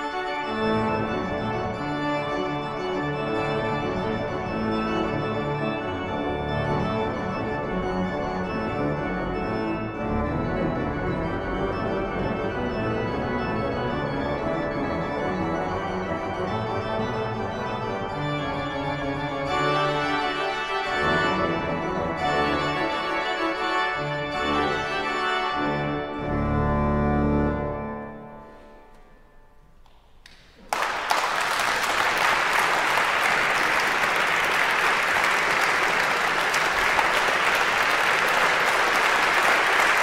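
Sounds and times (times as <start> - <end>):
pipe organ playing: 0.0 - 29.8, 30.9 - 40.0.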